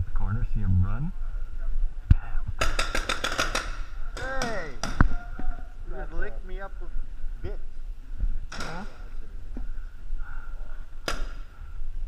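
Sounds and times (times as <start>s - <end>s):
paintball markers firing: 2.6s - 5.1s.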